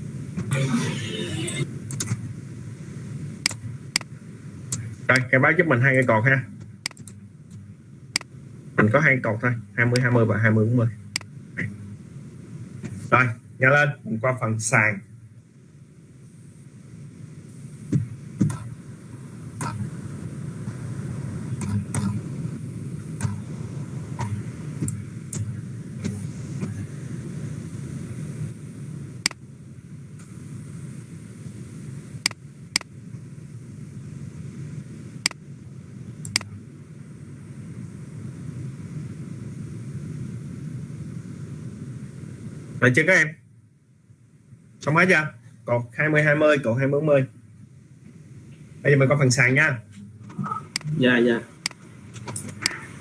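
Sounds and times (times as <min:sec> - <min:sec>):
low background rumble: 0:00.0 - 0:53.0
computer mouse clicks: 0:06.8 - 0:07.2, 0:21.6 - 0:22.2, 0:36.2 - 0:36.5.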